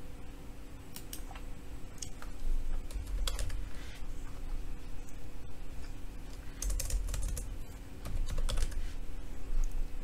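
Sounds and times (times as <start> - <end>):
keyboard typing: 2.0 - 3.7, 6.3 - 8.8.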